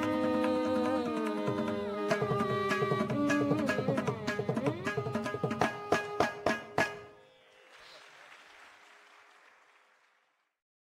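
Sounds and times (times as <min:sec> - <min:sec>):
faint audience applause: 0:07.5 - 0:10.6.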